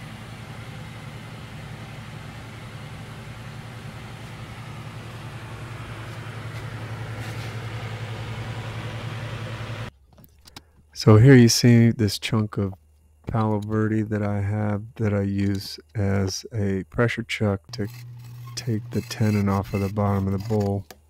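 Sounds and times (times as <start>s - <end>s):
wood lathe motor hum: 17.7s - 20.8s.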